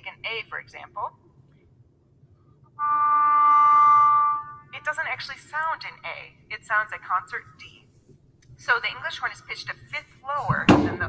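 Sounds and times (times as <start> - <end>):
english horn holding a note: 2.8 - 4.7.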